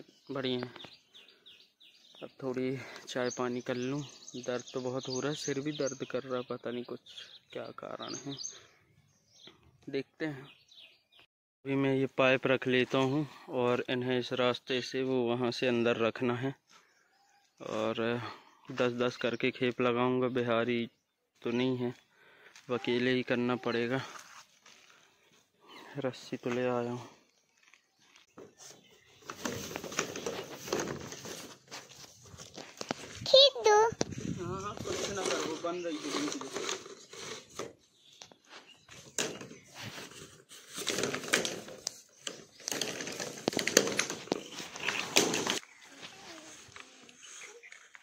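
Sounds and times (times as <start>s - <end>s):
man breathing: 22.1s - 22.7s
man speaking: 22.7s - 24.2s, 34.3s - 36.5s
plastic pipes knocking and clattering: 29.3s - 31.4s, 40.8s - 45.6s.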